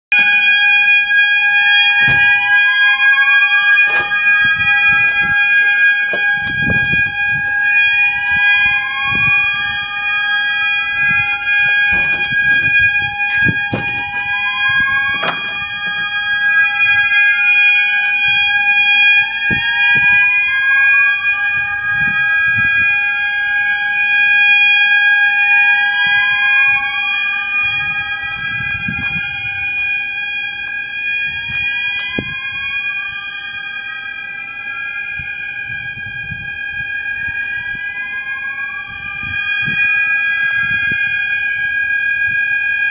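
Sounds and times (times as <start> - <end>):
siren-like rising sweep: 0.1 - 34.0
fire alarm high-pitched tone: 0.1 - 42.9.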